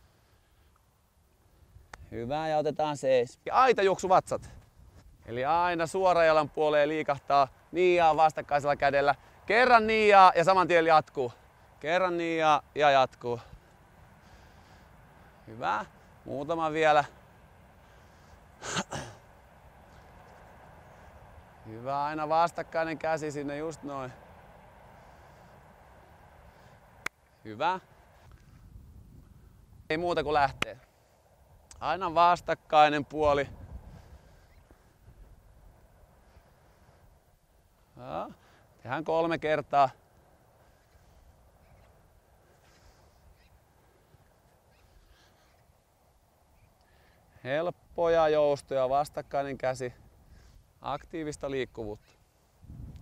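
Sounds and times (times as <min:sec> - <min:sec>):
faint outdoor rumble: 0:00.0 - 0:53.0
person sneezing: 0:18.6 - 0:19.2.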